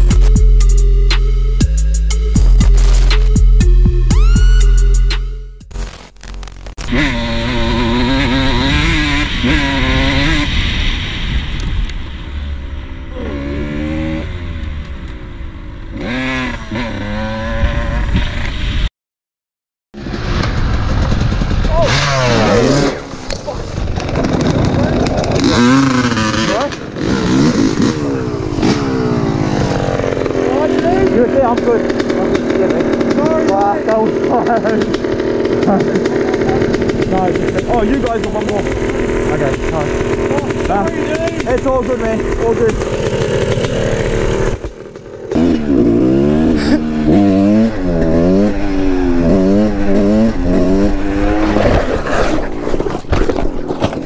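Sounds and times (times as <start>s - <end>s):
dirt bike engines revving: 6.6s - 18.8s, 20.0s - 54.0s.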